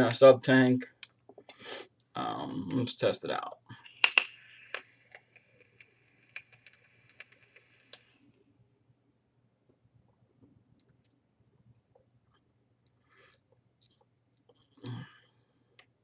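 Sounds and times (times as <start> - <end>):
vape coil sizzling hiss: 3.7 - 8.5.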